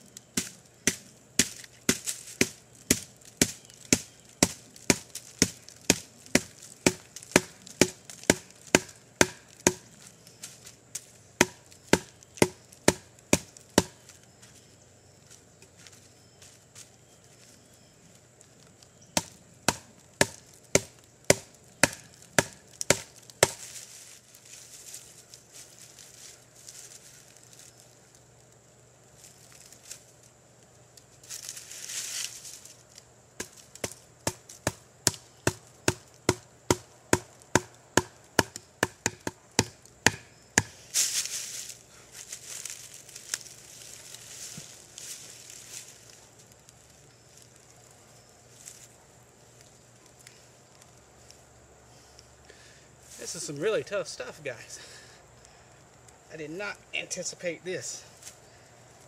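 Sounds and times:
rustling: 0:00.0 - 0:34.7, 0:40.7 - 0:52.3.

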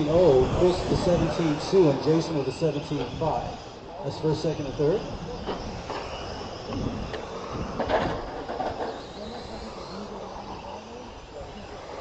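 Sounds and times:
electric rc car motors whining: 0:00.0 - 0:12.0.

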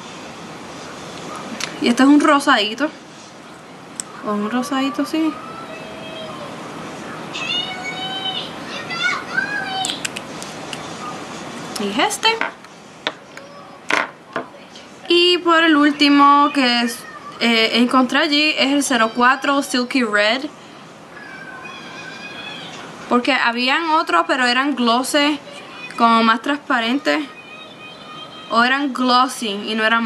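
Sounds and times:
faint high drawn-out cry: 0:21.1 - 0:22.9, 0:26.9 - 0:28.7
high-pitched animal call: 0:21.2 - 0:22.9.

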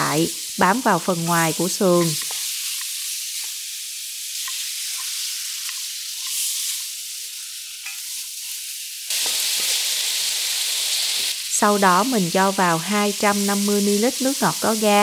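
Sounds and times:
meat sizzling in a pan: 0:00.0 - 0:15.0.

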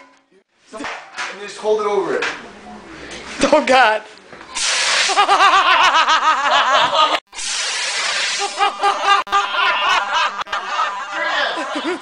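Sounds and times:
fire extinguisher hissing: 0:04.5 - 0:05.5, 0:07.3 - 0:08.8
people laughing: 0:05.0 - 0:07.2, 0:08.4 - 0:12.0.

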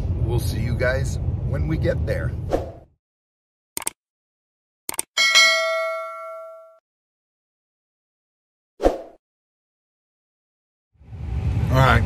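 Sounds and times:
notification bell ding: 0:05.2 - 0:06.8.

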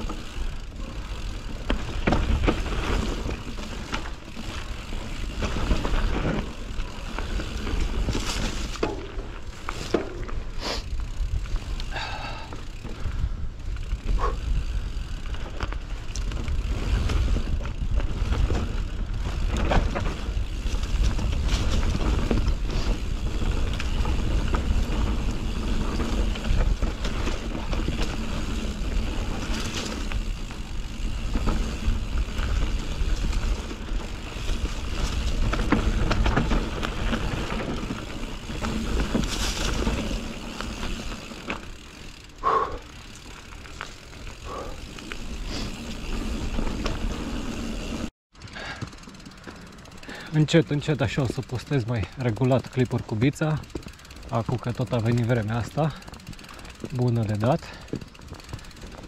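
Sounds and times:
bike rattling and knocking: 0:00.0 - 0:59.0
bike tyres rolling over dirt and leaves: 0:00.0 - 0:59.0.

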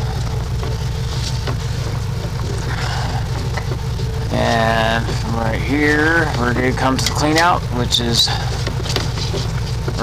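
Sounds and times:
engine running: 0:00.0 - 0:10.0.

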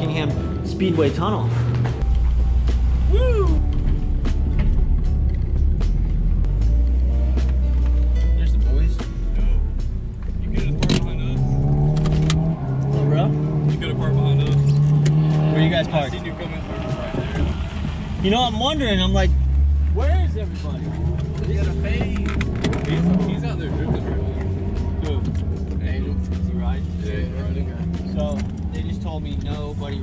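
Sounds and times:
road noise: 0:00.0 - 0:30.0
car engine from inside cabin: 0:09.9 - 0:18.2, 0:18.8 - 0:30.0.

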